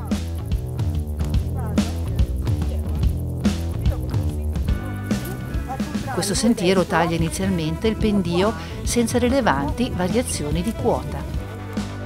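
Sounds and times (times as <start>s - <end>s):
instrumental music with held notes: 0.0s - 12.0s.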